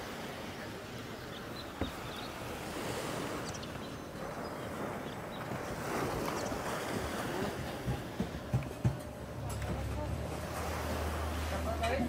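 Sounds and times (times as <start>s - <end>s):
waves washing onto beach: 0.0s - 12.0s.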